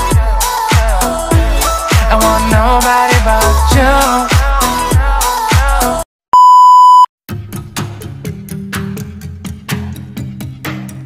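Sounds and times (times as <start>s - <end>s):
music: 0.0s - 6.0s, 7.3s - 11.0s
test tone beep: 6.4s - 7.1s.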